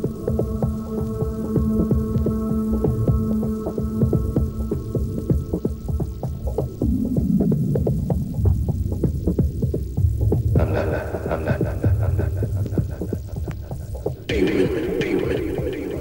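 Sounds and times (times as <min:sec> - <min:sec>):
electronic dance music beat: 0:10.6 - 0:16.0.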